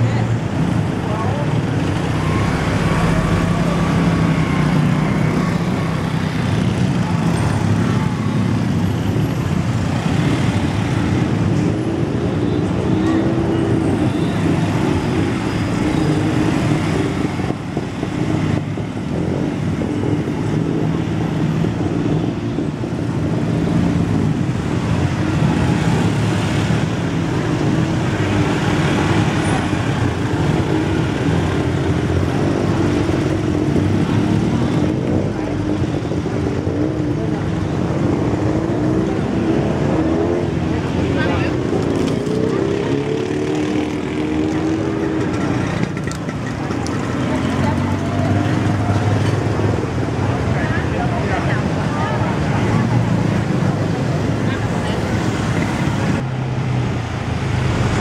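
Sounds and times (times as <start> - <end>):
other engines: 0.0 - 58.0
street noise: 0.0 - 58.0.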